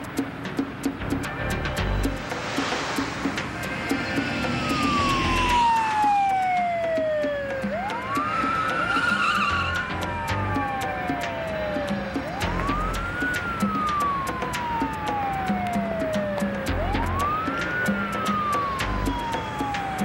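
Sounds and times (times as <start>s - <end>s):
background music with steady beat: 0.0s - 20.0s
police car siren wailing: 3.6s - 20.0s.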